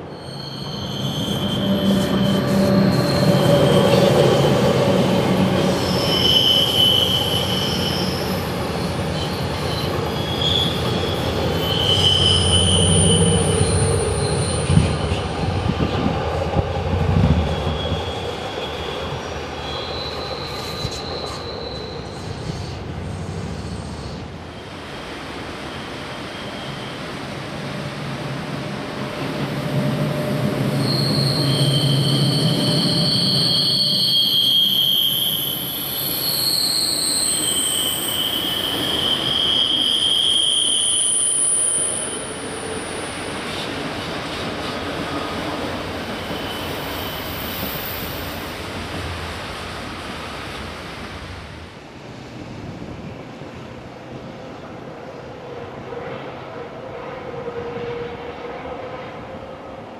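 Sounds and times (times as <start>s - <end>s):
train wheels squealing: 0.0s - 49.1s
rumble of train coaches: 0.0s - 59.9s.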